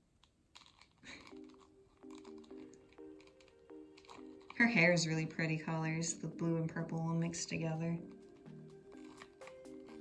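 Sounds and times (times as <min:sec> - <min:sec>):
soft background music: 0:00.2 - 0:10.0.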